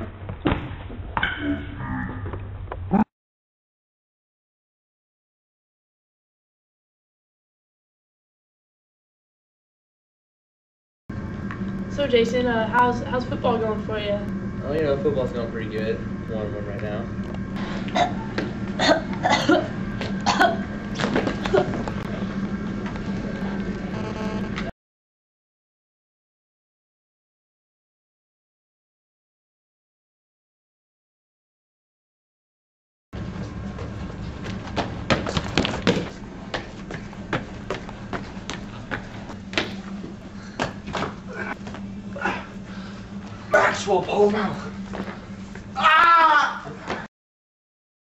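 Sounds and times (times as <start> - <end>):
steady low hum: 11.1 - 24.7, 33.2 - 47.1
woman choking and coughing: 17.9 - 20.7
footsteps on tiled floor: 33.2 - 41.8.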